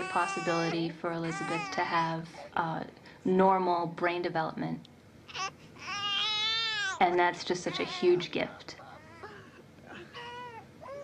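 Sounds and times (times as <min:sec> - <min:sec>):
infant cooing: 0:05.3 - 0:07.0, 0:09.0 - 0:11.0.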